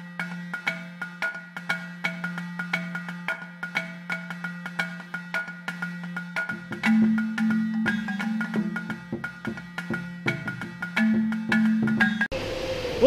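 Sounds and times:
mallet percussion tune: 0.0 - 12.3.

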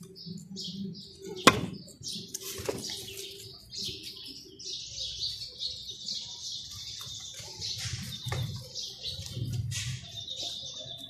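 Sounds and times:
rabbits rustling and crunching leaves: 0.0 - 11.0.

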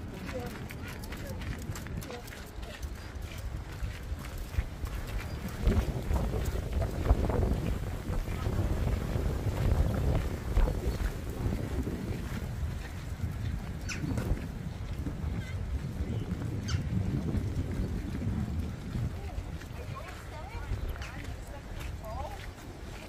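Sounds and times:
footsteps on a path: 0.0 - 23.0
wind buffeting microphone: 0.0 - 23.0.

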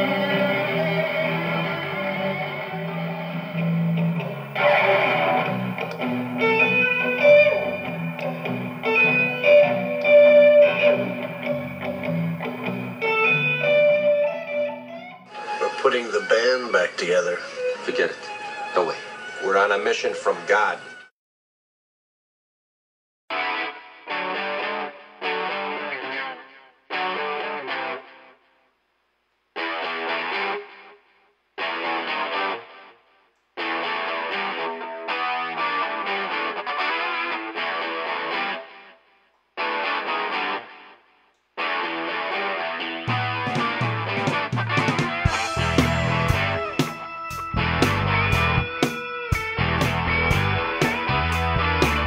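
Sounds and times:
bass guitar: 0.0 - 15.3, 43.0 - 52.0
distorted electric guitar: 0.0 - 21.0, 23.3 - 28.6, 29.6 - 52.0
drums: 43.1 - 52.0.

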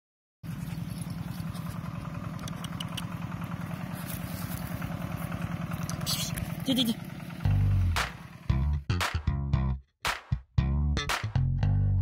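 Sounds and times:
low pulsing rumble: 0.5 - 8.9.

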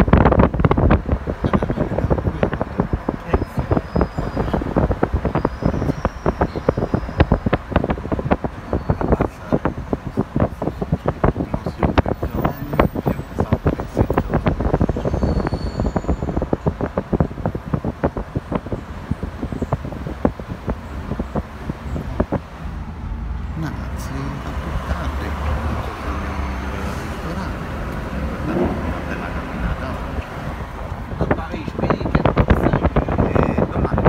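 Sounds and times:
car driving heard from inside: 0.0 - 34.0
low street rumble: 0.0 - 34.0.

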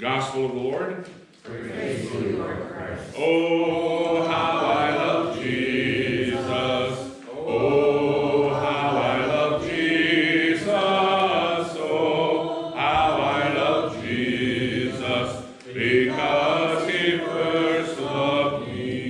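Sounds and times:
slow sung chant: 3.1 - 19.0.

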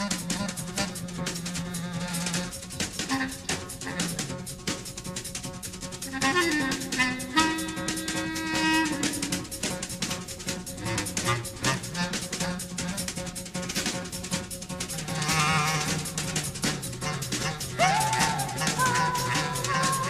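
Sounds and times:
drums and percussion: 0.0 - 20.0
double bass: 10.6 - 20.0.

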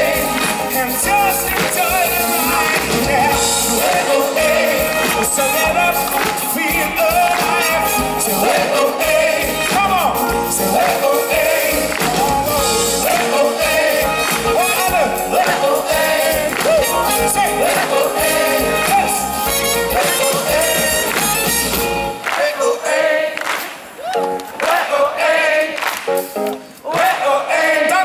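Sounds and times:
group vocals: 0.0 - 21.4, 22.0 - 26.0, 26.8 - 28.0
live pop band playing: 0.0 - 22.3.

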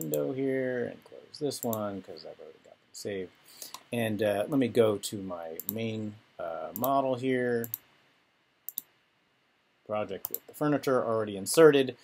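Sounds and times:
computer mouse clicks: 5.6 - 5.8, 7.6 - 7.8, 8.7 - 8.9, 10.2 - 10.4.

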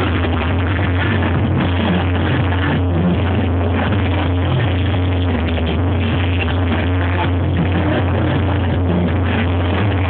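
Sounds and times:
heavy bass: 0.0 - 10.0
loud live banda music: 0.0 - 10.0.

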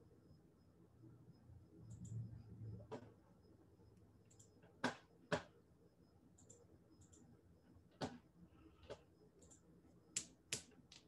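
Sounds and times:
computer mouse clicking: 1.9 - 2.2, 4.3 - 5.5, 6.4 - 7.3, 8.8 - 11.0.

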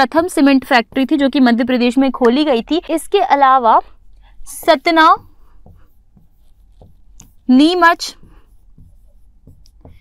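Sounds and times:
marker pen scratching on whiteboard: 0.0 - 3.7, 4.4 - 10.0.

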